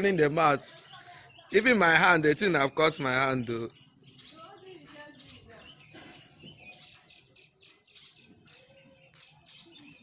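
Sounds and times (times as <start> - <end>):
faint bird chirps: 0.0 - 10.0.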